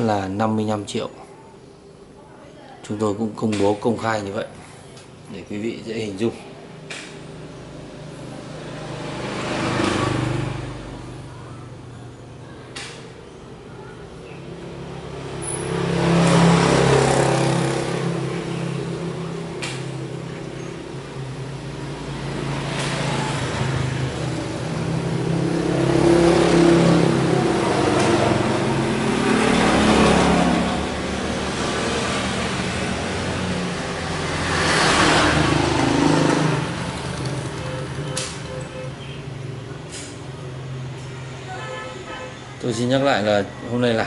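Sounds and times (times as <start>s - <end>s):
road vehicles passing by: 0.0s - 44.0s.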